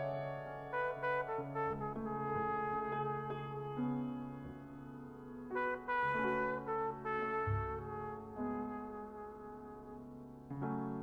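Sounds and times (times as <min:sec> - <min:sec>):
solo trumpet melody: 0:00.0 - 0:04.6, 0:05.4 - 0:11.0.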